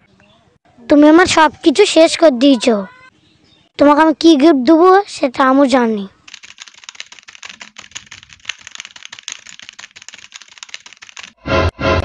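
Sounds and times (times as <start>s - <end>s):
keyboard key clicks: 6.3s - 11.3s.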